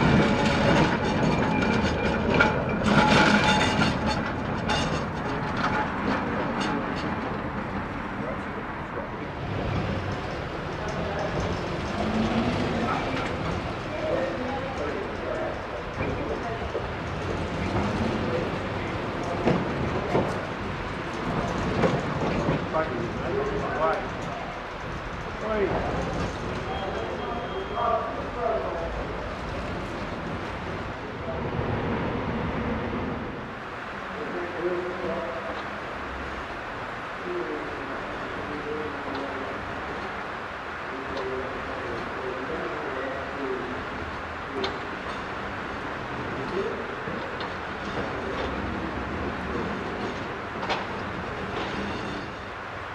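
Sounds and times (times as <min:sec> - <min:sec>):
outdoor background noise: 0:00.0 - 0:52.9
tram wheels on track: 0:00.0 - 0:52.9.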